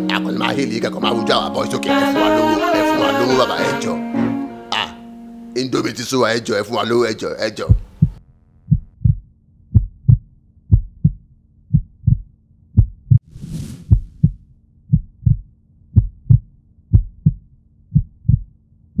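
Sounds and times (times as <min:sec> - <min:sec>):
heartbeat thumps: 0:07.6 - 0:13.2, 0:13.8 - 0:19.0.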